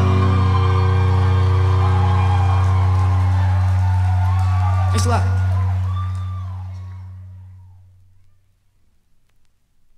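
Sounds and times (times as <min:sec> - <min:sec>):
rock band sustained chord: 0:00.0 - 0:07.6.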